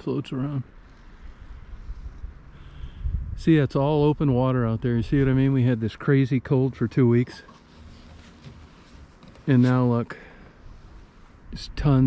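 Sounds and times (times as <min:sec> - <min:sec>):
wind buffeting microphone: 0:01.2 - 0:05.6.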